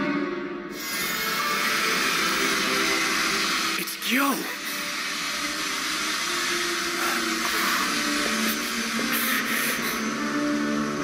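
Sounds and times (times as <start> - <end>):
faint background music: 0.0 - 11.0
steady rushing hiss: 0.7 - 11.0.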